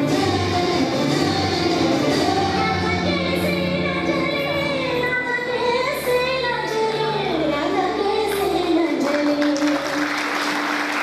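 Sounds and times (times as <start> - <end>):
high singing voice with music: 0.0 - 10.0.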